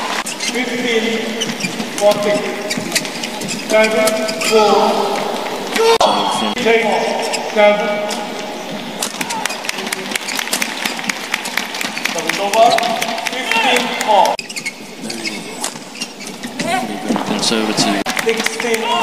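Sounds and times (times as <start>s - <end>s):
shoe squeaks on court floor: 0.0s - 17.9s
voices in a large hall: 0.0s - 19.0s.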